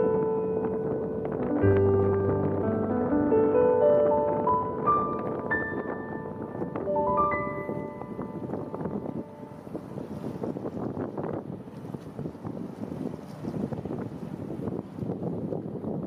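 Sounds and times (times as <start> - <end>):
waterfront ambience: 0.0 - 16.0
wind buffeting microphone: 0.0 - 16.0.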